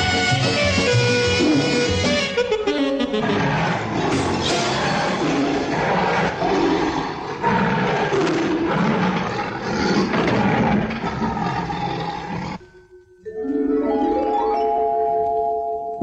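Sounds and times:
background music: 0.0 - 5.4, 12.6 - 16.0
cartoon lion roaring: 3.0 - 12.6.

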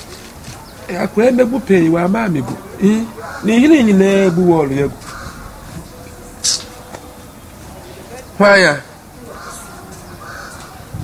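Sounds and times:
crow cawing: 3.0 - 5.9, 9.2 - 10.9.

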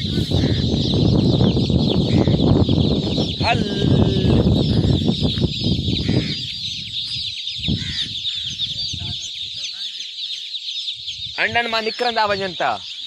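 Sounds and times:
chicks peeping: 0.0 - 13.0.

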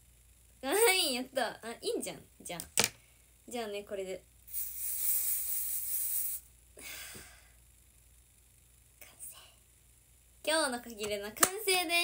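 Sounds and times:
aerosol spray hiss: 4.5 - 6.5.

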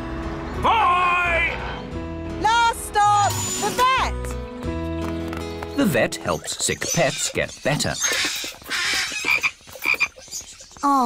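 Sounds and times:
croaking animal calls: 6.2 - 11.0.

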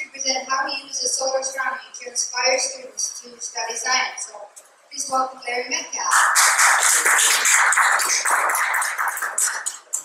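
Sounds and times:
audience applauding: 6.1 - 10.0.

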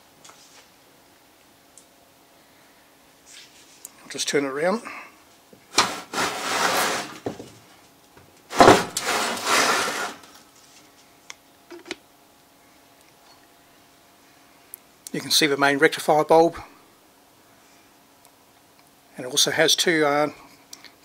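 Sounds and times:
metal case scraping on workbench: 5.7 - 7.3, 8.5 - 10.3.

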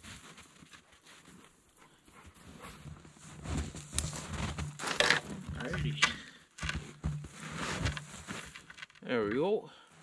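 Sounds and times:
wooden pole scraping and rustling: 2.5 - 9.5.

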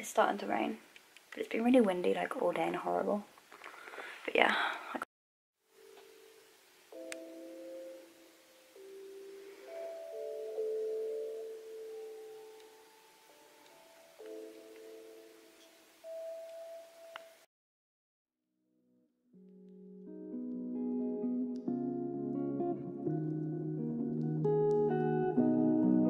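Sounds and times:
mellow keyboard chords: 5.8 - 17.5, 19.5 - 26.0.

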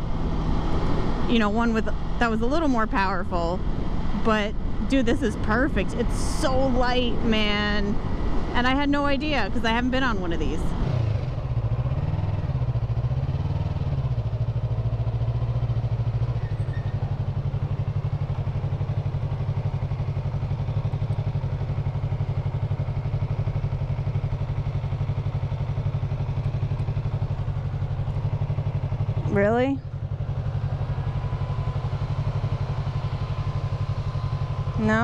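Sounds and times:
motorcycle engine idling: 0.0 - 35.0.

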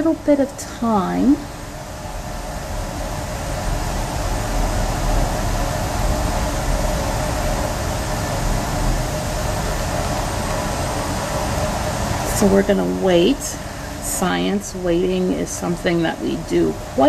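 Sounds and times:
ventilation air rushing: 0.0 - 17.0.

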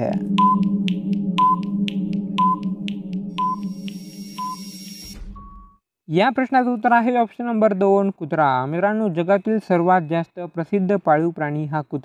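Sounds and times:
low droning music: 0.0 - 5.3
countdown timer beep-ticks: 0.0 - 5.7.

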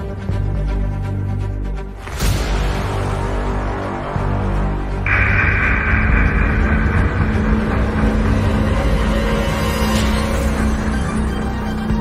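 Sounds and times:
deep rumbling drone: 3.3 - 12.0.

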